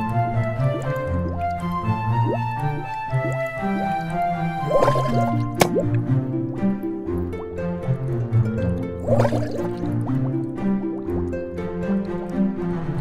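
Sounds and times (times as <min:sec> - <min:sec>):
bubble pops and drips: 0:00.0 - 0:07.6, 0:08.2 - 0:12.4
theme music: 0:00.0 - 0:13.0.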